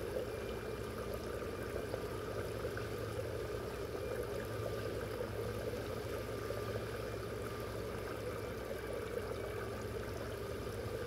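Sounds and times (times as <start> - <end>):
low steady hum: 0.0 - 11.0
water trickling into pond: 0.0 - 11.0.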